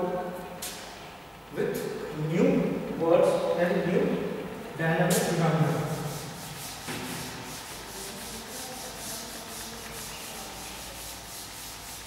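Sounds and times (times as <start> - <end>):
duster rubbing on blackboard: 5.6 - 12.0.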